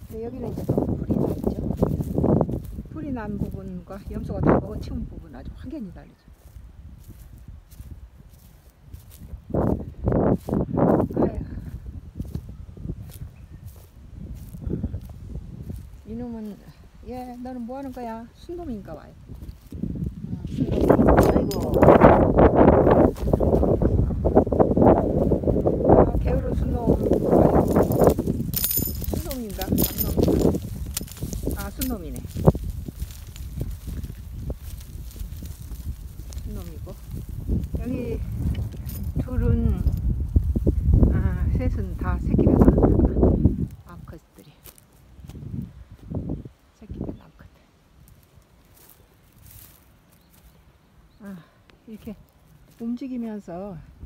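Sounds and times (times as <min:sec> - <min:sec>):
footsteps in dry grass: 0:00.0 - 0:46.8, 0:47.7 - 0:54.0
wind buffeting microphone: 0:00.0 - 0:50.6, 0:52.0 - 0:54.0.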